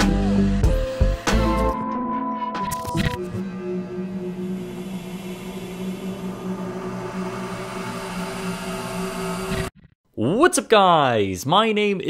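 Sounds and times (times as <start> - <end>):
low electronic drone with hiss: 3.2 - 9.5.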